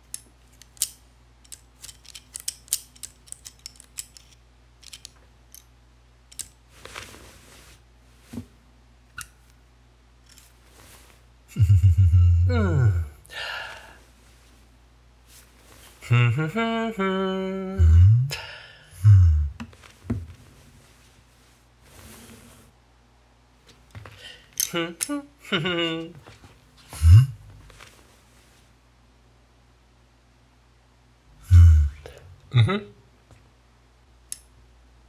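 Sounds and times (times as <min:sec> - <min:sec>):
man humming sliding pitch: 0:11.5 - 0:13.2, 0:16.0 - 0:18.4, 0:19.0 - 0:19.6, 0:27.0 - 0:27.4, 0:31.4 - 0:32.9.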